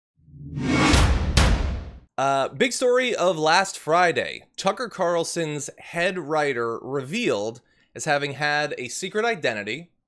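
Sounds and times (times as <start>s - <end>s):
swelling whoosh: 0.3s - 1.6s
sharp hits: 0.4s - 2.0s.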